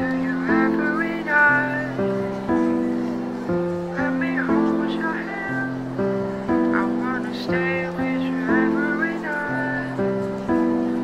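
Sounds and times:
high voice singing: 6.5s - 10.1s.

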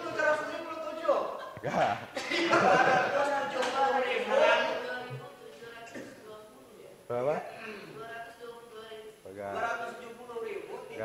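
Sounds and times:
voices in a large room: 0.0s - 11.0s
man laughing aloud: 1.5s - 3.2s.

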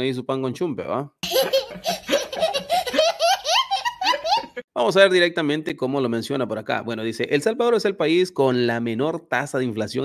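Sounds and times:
toddler laughing: 1.2s - 4.6s.

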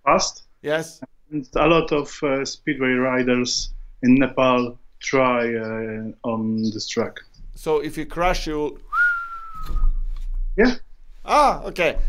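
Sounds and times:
person whistling falling note: 8.9s - 10.1s.

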